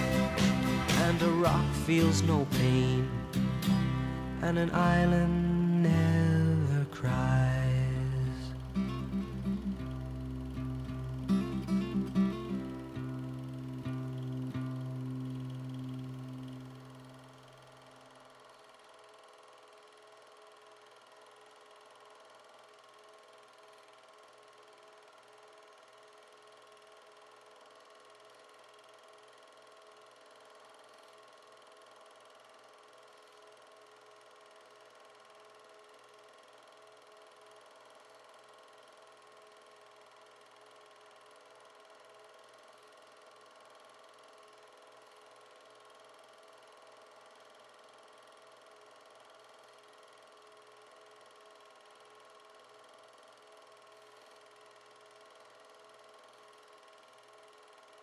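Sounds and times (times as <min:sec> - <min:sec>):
faint hum with hiss: 0:00.0 - 0:58.0.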